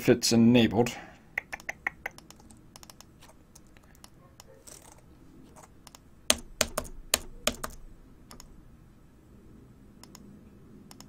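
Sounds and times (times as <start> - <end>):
computer keyboard clicks: 1.5 - 8.5, 10.0 - 10.3.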